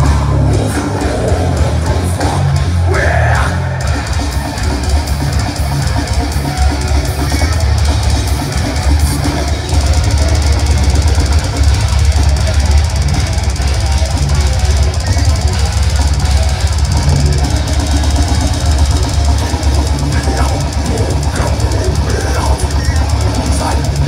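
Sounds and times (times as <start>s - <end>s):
death metal band playing live: 0.0s - 24.0s.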